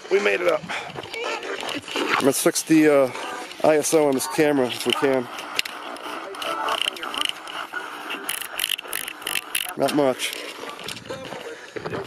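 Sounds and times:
radio static sweeping: 1.2s - 12.0s.

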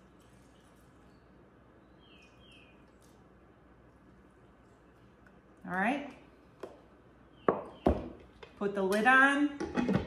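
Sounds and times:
carton knocking on stone countertop: 7.5s - 8.2s.

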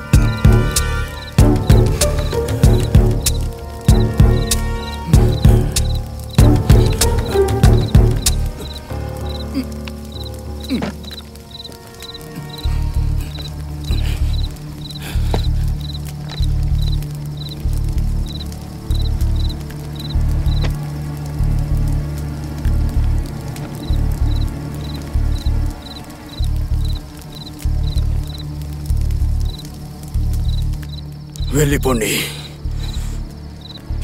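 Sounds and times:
low bass pulses: 0.0s - 10.5s, 12.6s - 25.8s
high cricket-like chirps: 0.0s - 22.4s, 23.3s - 34.0s
person speaking: 31.4s - 32.6s.

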